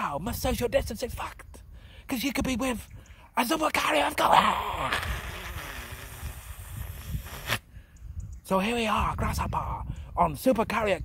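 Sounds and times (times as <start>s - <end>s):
wind buffeting microphone: 0.0s - 11.0s
steady hiss: 4.6s - 7.8s.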